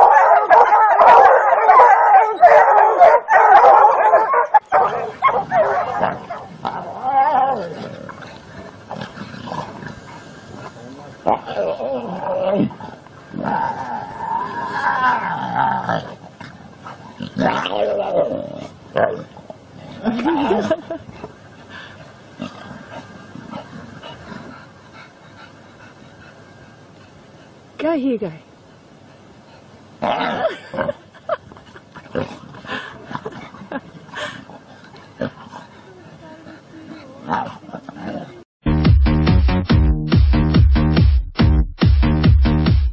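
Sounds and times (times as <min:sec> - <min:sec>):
animals scuffling: 0:00.0 - 0:11.5
animals growling and snarling: 0:00.0 - 0:27.5, 0:30.0 - 0:38.5.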